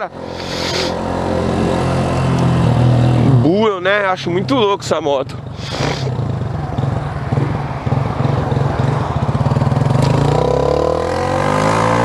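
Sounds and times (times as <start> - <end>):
motorcycle engine running: 0.2 - 11.1.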